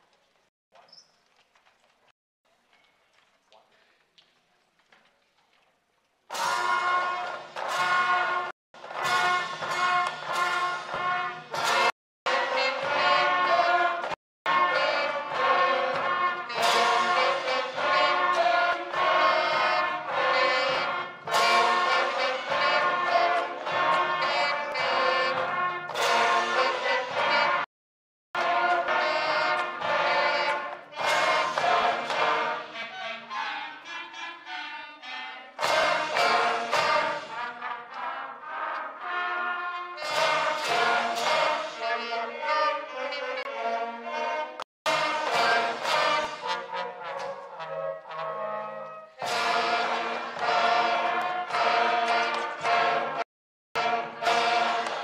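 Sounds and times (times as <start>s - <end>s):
school concert band playing: 6.3s - 27.7s, 28.4s - 53.2s, 53.8s - 55.0s.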